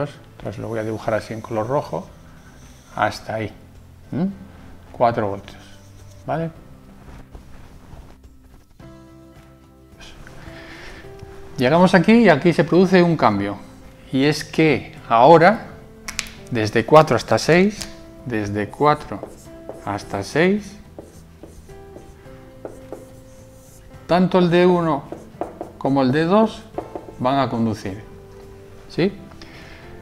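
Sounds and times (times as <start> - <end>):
quiet background music: 0.0 - 30.0
marker writing on whiteboard: 18.7 - 27.3.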